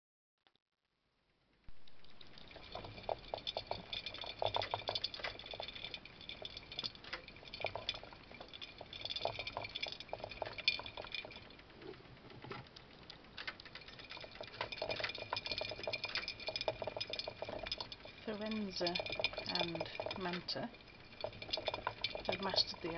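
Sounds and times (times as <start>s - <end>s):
mice running in plastic wheel: 1.7s - 22.9s.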